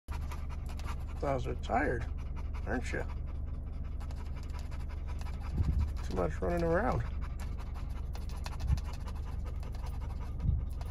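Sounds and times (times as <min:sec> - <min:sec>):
dogs panting: 0:00.1 - 0:10.9.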